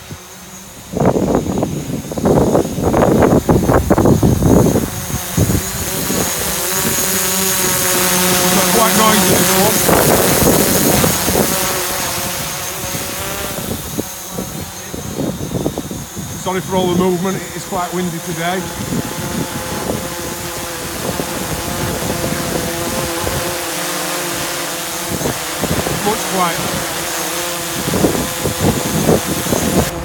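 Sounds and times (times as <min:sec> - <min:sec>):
drone propellers whining: 0:00.0 - 0:30.0
wind buffeting microphone: 0:00.1 - 0:30.0.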